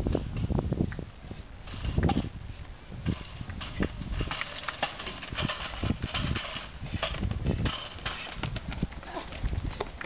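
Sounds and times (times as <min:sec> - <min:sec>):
low wind rumble: 0:00.0 - 0:10.0
hurdles clacking: 0:03.0 - 0:10.0.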